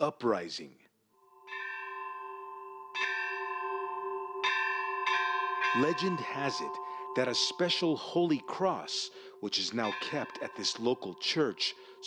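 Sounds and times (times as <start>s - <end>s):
church bell ringing: 1.3s - 12.0s.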